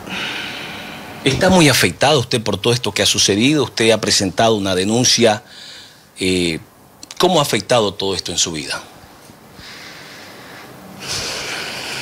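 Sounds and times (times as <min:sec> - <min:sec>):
woman breathing through nose: 0:00.0 - 0:01.2, 0:09.6 - 0:12.0.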